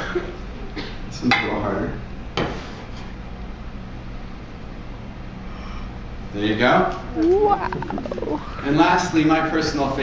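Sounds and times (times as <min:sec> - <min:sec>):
projector fan humming: 0:03.2 - 0:10.0.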